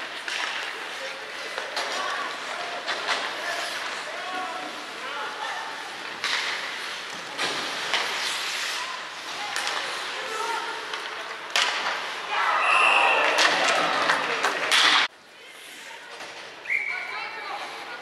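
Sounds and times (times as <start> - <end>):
hockey sticks and puck knocking: 0.2 - 2.1.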